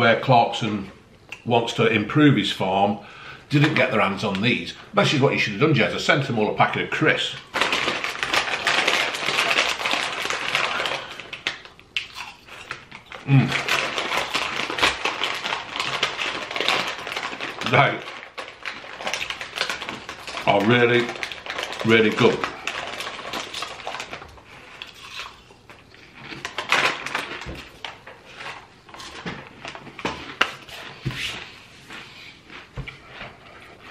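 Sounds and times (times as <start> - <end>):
foil crisp packet crinkling: 6.7 - 31.6.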